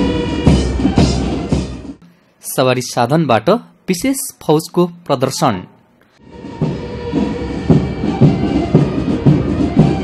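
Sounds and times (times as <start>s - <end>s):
march drum beat: 6.4s - 10.0s.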